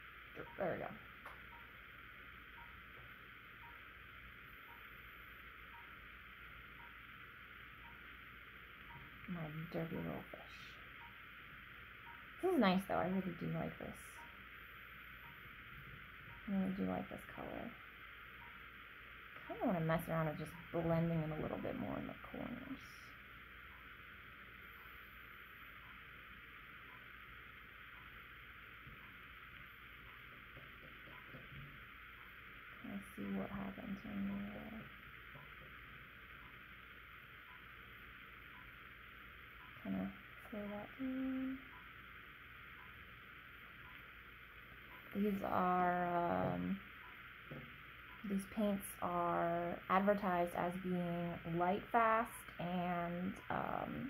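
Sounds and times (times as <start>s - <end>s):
faint soft ticks: 6.8s - 7.0s, 25.8s - 26.0s, 27.9s - 28.2s, 43.8s - 44.1s.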